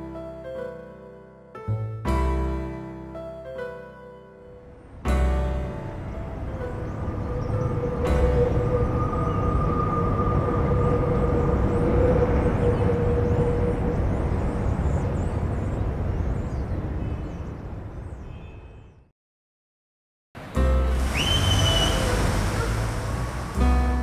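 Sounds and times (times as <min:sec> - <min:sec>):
barge engine rumbling: 0:20.4 - 0:24.0.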